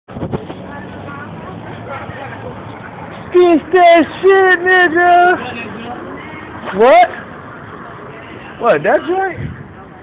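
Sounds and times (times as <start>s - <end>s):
faint voices: 0.1s - 10.0s
vehicle engine humming: 0.1s - 10.0s.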